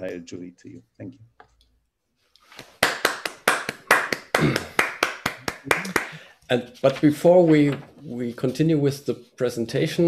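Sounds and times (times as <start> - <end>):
person clapping hands: 2.4 - 6.2.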